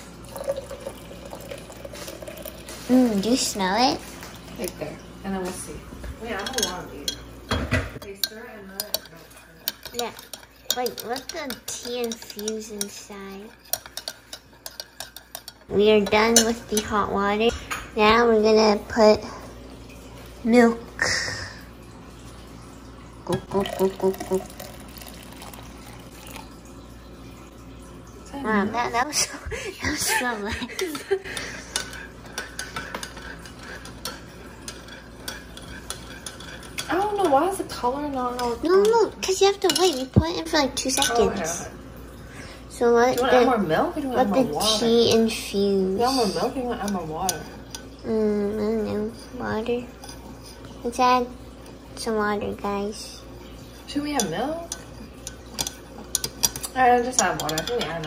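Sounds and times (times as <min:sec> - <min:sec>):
spoon stirring liquid: 0:00.0 - 0:05.1, 0:06.0 - 0:19.2, 0:22.2 - 0:27.4, 0:29.9 - 0:58.0
spoon clinking against glass: 0:06.4 - 0:07.3, 0:54.2 - 0:58.0.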